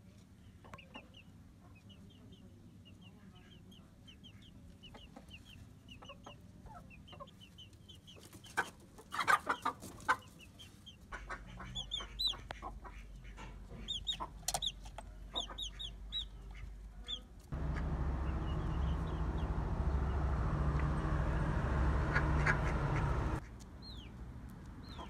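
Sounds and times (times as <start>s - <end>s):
chickens clucking: 0.5s - 24.1s
high-pitched chick peeps: 0.6s - 20.2s
steady low rumble: 17.5s - 23.4s.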